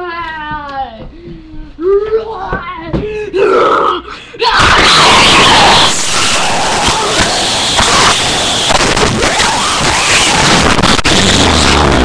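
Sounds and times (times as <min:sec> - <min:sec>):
child gasping and groaning: 0:02.9 - 0:04.5
harsh rush of noise: 0:04.5 - 0:12.0.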